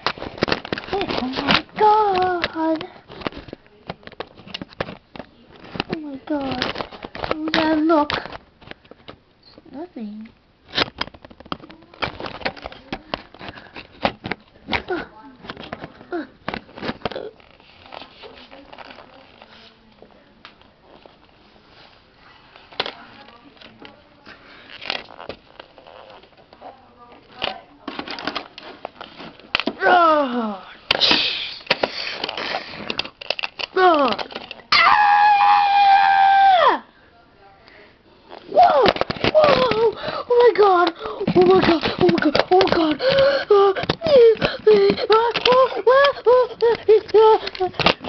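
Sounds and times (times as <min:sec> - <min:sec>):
high held scream: 0:34.7 - 0:36.8.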